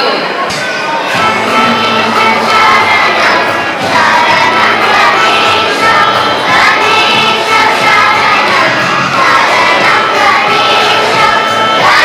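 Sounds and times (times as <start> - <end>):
children singing in unison: 0.9 - 12.0.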